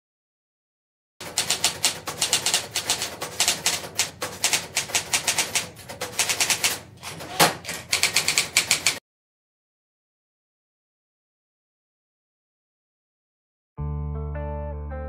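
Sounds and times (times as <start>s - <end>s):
heavier typewriter clack: 1.2s - 9.0s
typewriter keys clacking: 1.2s - 9.0s.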